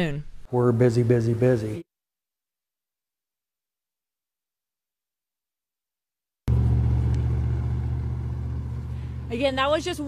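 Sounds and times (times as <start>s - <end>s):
vehicle engine rumble: 6.5s - 10.0s.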